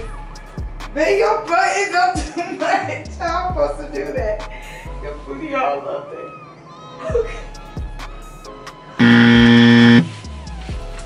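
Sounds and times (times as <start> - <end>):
wrong answer buzzer: 9.0 - 10.1.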